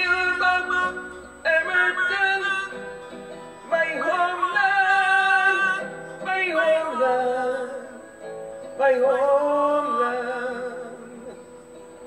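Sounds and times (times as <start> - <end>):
man singing ballad: 0.0 - 2.9, 3.7 - 11.8
acoustic guitar: 0.0 - 12.0.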